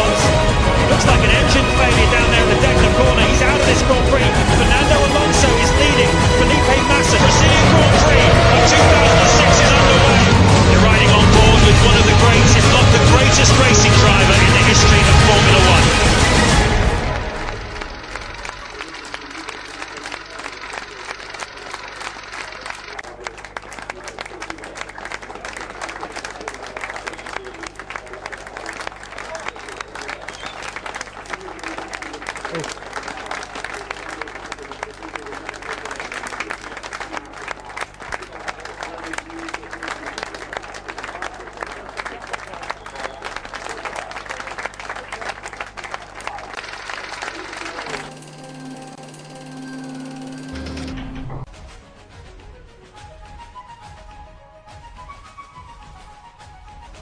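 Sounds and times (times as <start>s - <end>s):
voices: 0.0s - 16.0s, 18.0s - 51.4s
people applauding: 0.0s - 51.4s.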